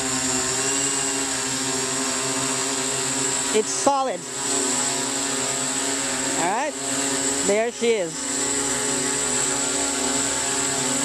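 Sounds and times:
drone motors humming: 0.0 - 11.0
rush of air from propellers: 0.0 - 11.0.

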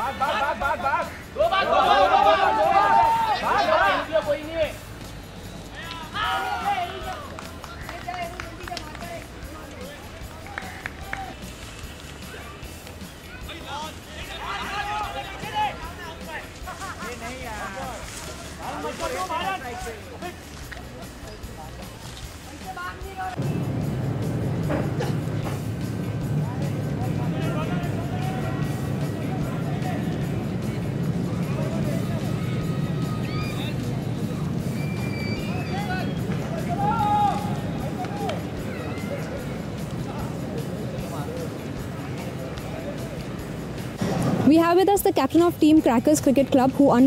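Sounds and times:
players shouting: 0.0 - 4.8, 5.7 - 8.7, 12.2 - 18.0, 26.6 - 43.2
background music: 0.0 - 47.0.

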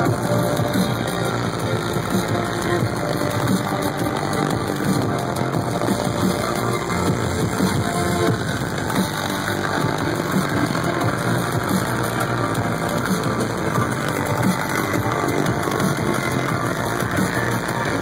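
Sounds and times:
loud electronic bass music: 0.0 - 18.0.

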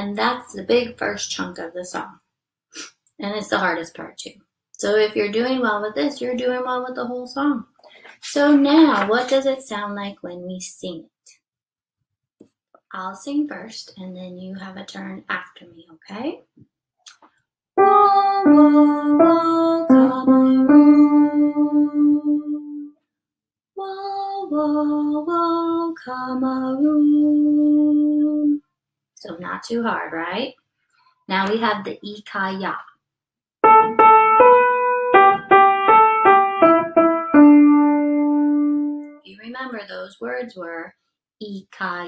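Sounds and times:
woman speaking: 0.0 - 2.2, 3.2 - 11.1, 12.9 - 16.4, 29.2 - 30.5, 31.3 - 32.8, 39.2 - 42.0
piano melody: 17.8 - 22.8, 33.6 - 39.2
woman singing unaccompanied: 17.8 - 22.8, 23.8 - 28.6.

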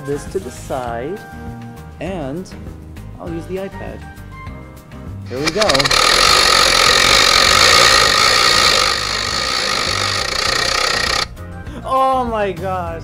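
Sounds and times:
background music: 0.0 - 13.0
loud steady hissing: 5.3 - 11.3.

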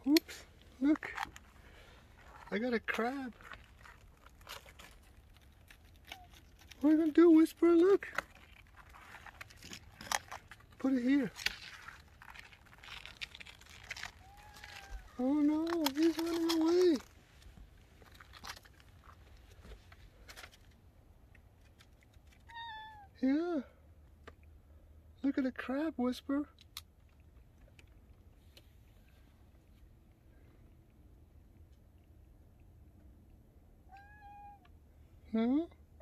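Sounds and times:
cat meowing: 14.2 - 15.2, 22.5 - 23.2, 33.9 - 34.7.

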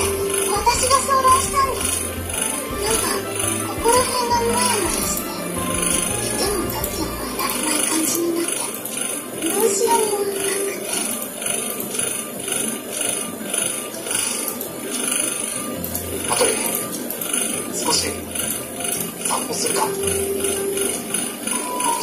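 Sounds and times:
dialogue: 0.0 - 11.6, 15.8 - 22.0
background music with steady pulse: 0.0 - 22.0.

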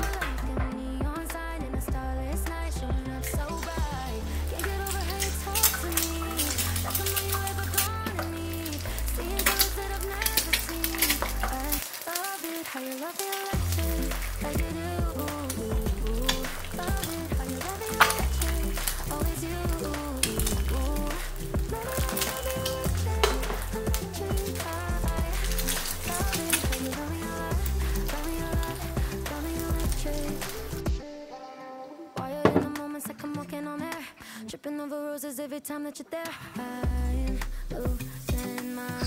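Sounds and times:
background pop music: 0.0 - 39.0
egg sizzling and popping in oil: 3.0 - 31.0, 36.8 - 39.0.

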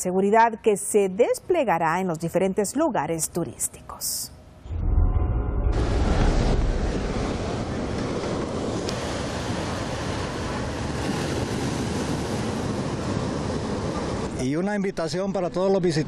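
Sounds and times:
waves breaking on stony beach: 6.4 - 14.4.

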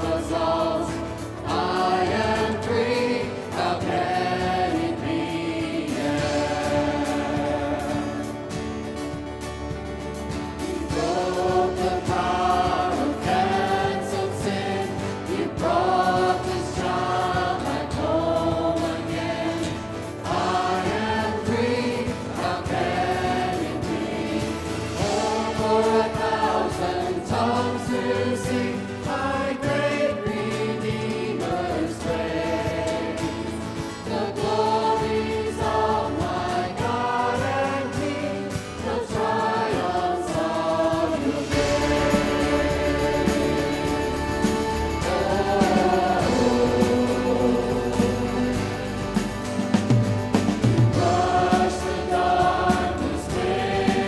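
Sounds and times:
choir singing worship song: 0.0 - 54.0.

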